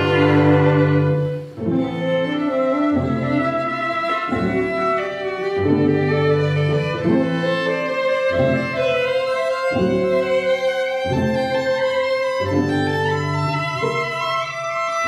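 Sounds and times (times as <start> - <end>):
low bowed string notes: 0.0 - 15.0.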